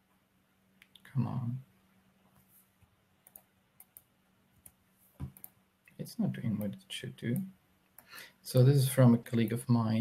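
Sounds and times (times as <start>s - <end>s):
faint computer clicks: 3.2s - 8.6s.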